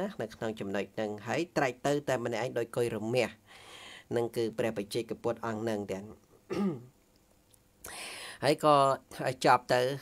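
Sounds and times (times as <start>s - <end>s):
noisy breath: 3.4s - 4.1s, 7.8s - 8.4s
man clearing throat: 6.5s - 6.9s.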